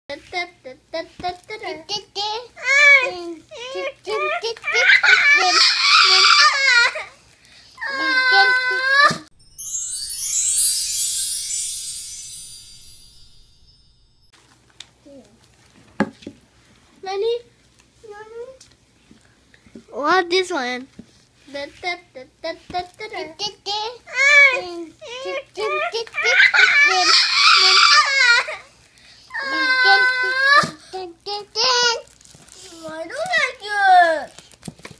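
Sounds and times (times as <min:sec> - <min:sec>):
toddler shrieking: 0:04.7 - 0:07.1, 0:26.2 - 0:28.6, 0:29.3 - 0:30.7
toddler squealing and giggling: 0:04.7 - 0:07.2, 0:26.1 - 0:28.7.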